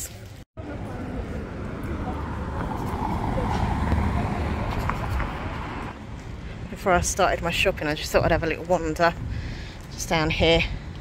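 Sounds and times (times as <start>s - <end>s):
vehicle passing: 0.6s - 6.8s.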